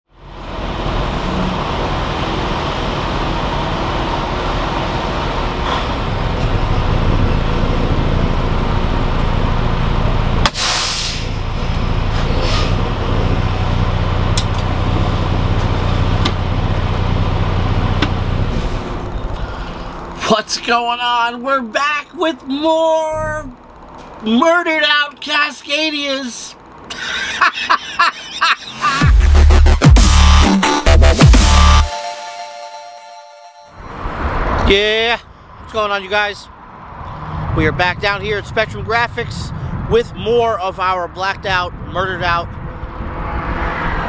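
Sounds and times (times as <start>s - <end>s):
truck diesel engine: 0.1s - 41.3s
road noise: 0.1s - 44.0s
air brakes hissing: 10.4s - 12.9s, 18.5s - 20.1s.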